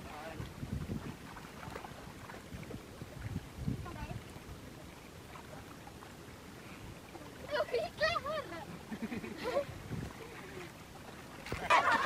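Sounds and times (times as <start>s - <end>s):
wind buffeting microphone: 0.0s - 4.6s, 9.5s - 10.6s
stream water sloshing and splashing: 0.0s - 12.0s.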